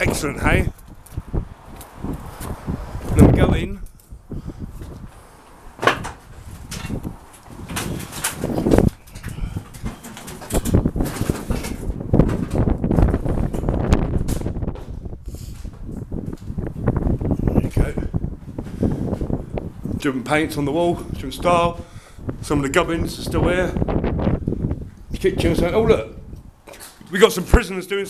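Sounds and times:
footsteps on debris: 0.7s - 3.2s.

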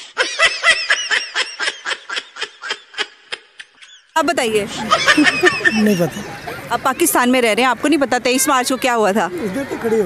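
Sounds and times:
woman giggling: 4.7s - 6.2s.

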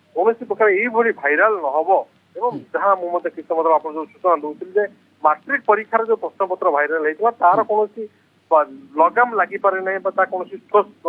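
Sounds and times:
man talking over telephone: 0.2s - 11.0s.

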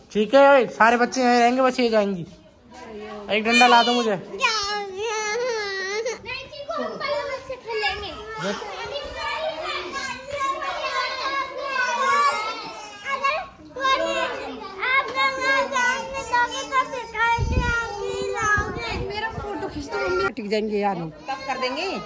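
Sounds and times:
children talking and calling out: 1.0s - 22.0s.

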